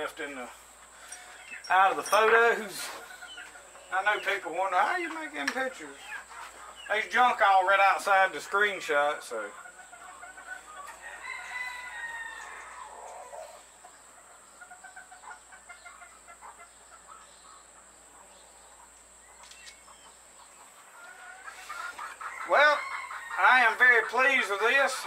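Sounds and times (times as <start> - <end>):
chicken clucking: 0.2 - 25.0
rooster crowing: 10.6 - 13.7, 22.3 - 23.8.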